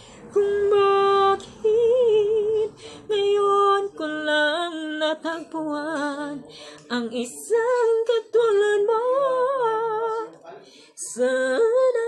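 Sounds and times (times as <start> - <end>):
person singing unaccompanied: 0.2 - 10.4, 11.0 - 12.0.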